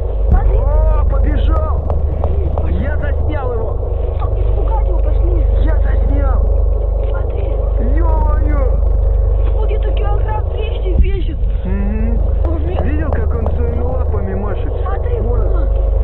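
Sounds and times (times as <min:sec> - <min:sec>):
low rumble on microphone: 0:00.0 - 0:16.0
young people talking: 0:00.3 - 0:15.8.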